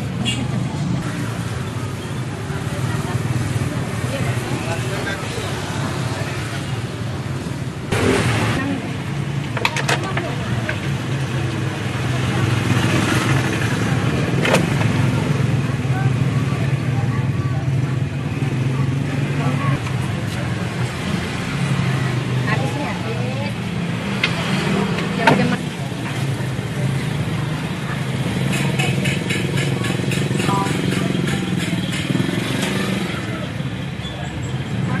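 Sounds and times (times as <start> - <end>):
indistinct voices: 0.0 - 35.0.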